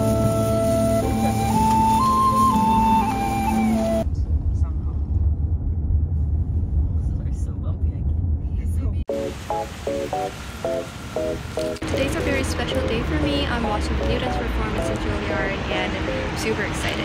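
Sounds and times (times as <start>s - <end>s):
flute-like music: 0.0s - 4.1s
car cabin road and engine rumble: 4.0s - 9.5s, 10.4s - 17.0s
person speaking: 11.8s - 17.0s.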